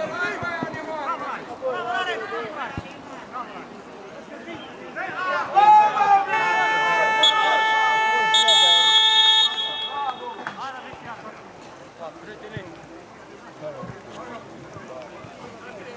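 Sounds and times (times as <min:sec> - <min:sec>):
football spectators shouting: 0:04.3 - 0:11.2
horn blast: 0:06.6 - 0:10.6.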